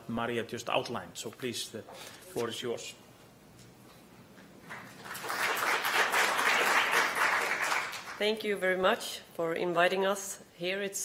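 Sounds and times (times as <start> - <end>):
audience applauding: 4.7 - 8.2.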